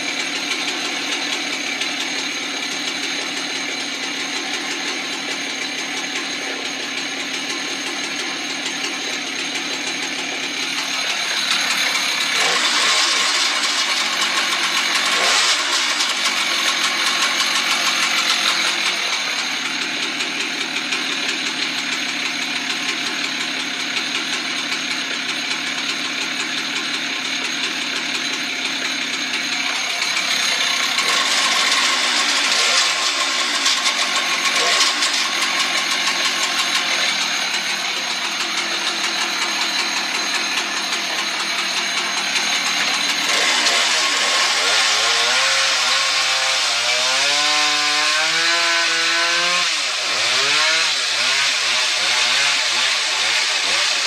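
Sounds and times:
chainsaw cutting logs: 0.0 - 54.0.

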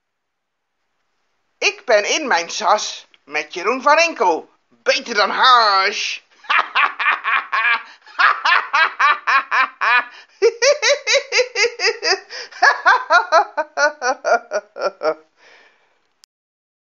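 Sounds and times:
person laughing hard: 6.4 - 15.3.

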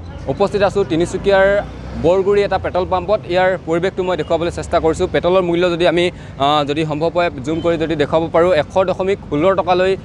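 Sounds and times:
motorcycles passing: 0.0 - 10.0
road traffic rumble: 0.0 - 10.0
man speaking: 0.3 - 10.0.

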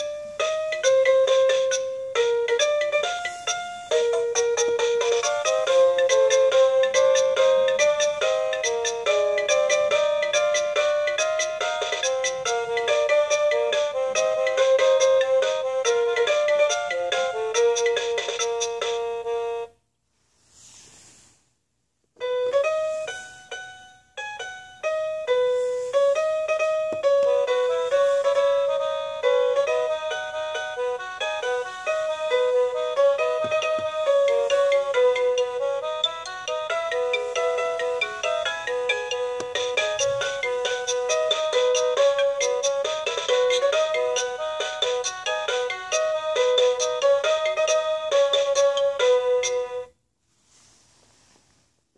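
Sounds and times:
toy speaker playing electronic tune: 0.0 - 19.8, 22.2 - 49.9.

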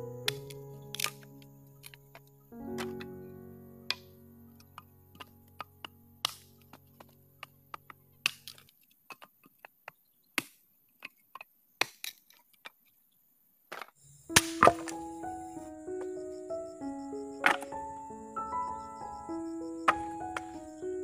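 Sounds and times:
blade chopping wood: 0.3 - 3.1, 3.9 - 12.8, 13.7 - 15.2, 17.4 - 17.8, 19.9 - 20.7.

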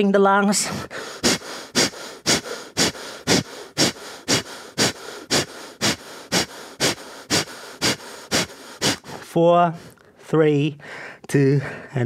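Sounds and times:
person breathing hard: 0.6 - 10.1, 10.8 - 12.0.

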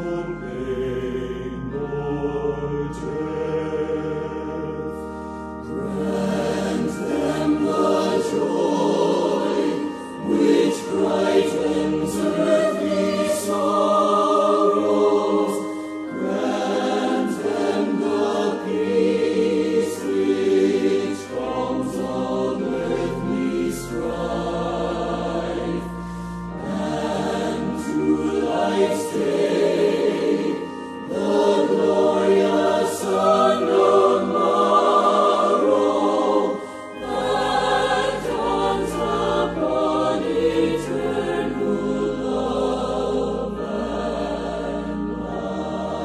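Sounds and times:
choir singing: 0.0 - 46.0.

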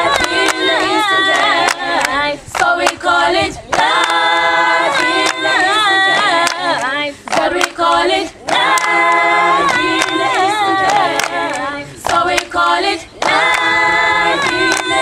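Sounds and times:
choir singing in harmony: 0.0 - 15.0
hand claps: 0.1 - 3.1, 3.7 - 12.6, 13.2 - 13.8, 14.4 - 15.0.

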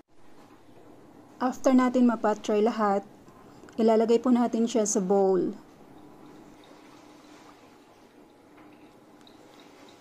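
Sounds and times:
faint steady hum: 0.1 - 10.0.

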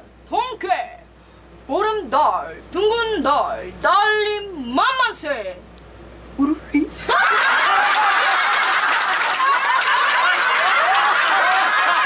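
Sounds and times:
crowd laughing loudly: 7.0 - 12.0.

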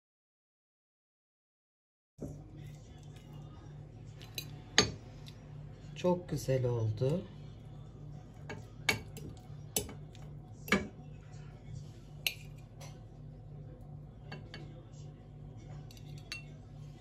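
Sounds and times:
low steady hum: 2.2 - 17.0
fork clinking on glass and porcelain: 15.8 - 16.6.

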